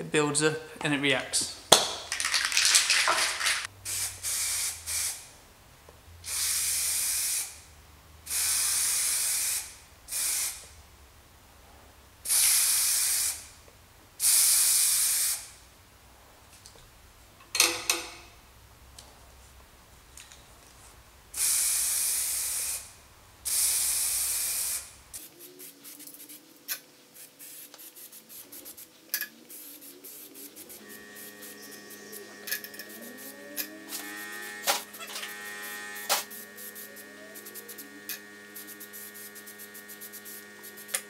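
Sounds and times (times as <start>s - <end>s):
aerosol spray can bursts: 2.7s - 5.3s, 6.2s - 7.6s, 8.3s - 10.6s, 12.3s - 13.5s, 14.2s - 15.5s, 21.4s - 22.9s, 23.5s - 26.4s, 27.2s - 28.8s, 29.5s - 35.0s, 36.0s - 37.9s, 38.6s - 41.0s
steady low hum: 30.4s - 41.0s.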